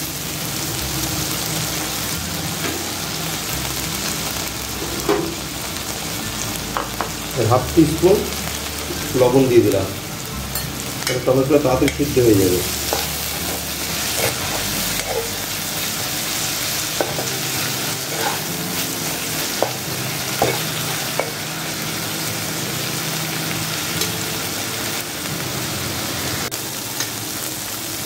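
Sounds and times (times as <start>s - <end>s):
vegetables sizzling in hot oil: 0.0s - 28.0s
metal spatula scraping a pan: 11.9s - 15.5s, 16.9s - 18.6s.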